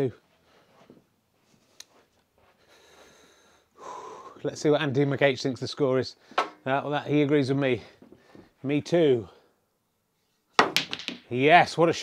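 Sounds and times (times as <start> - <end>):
breathing close to microphone: 2.4 - 4.4, 7.8 - 8.6.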